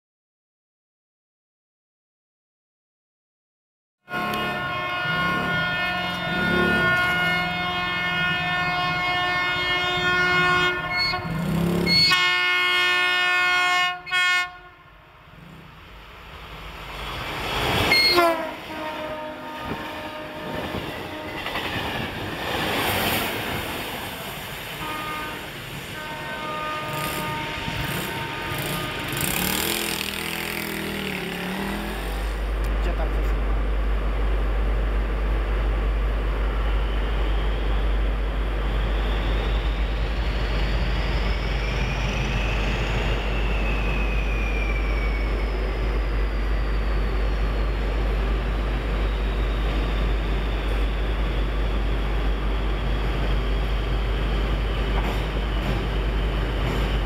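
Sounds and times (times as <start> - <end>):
locomotive whine: 4.1 - 57.0
train rumbling past: 4.1 - 57.0.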